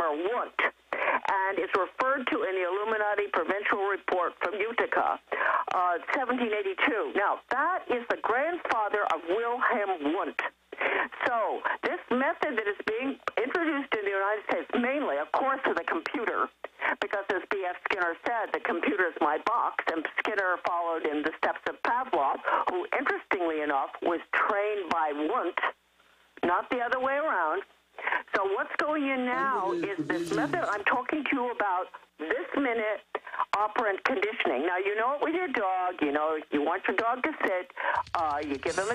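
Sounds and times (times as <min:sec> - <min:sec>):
person talking over telephone line: 0:28.3 - 0:38.9.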